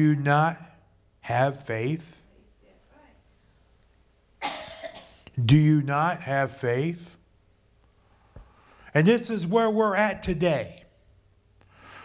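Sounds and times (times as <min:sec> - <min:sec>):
man coughing: 0:04.4 - 0:05.3.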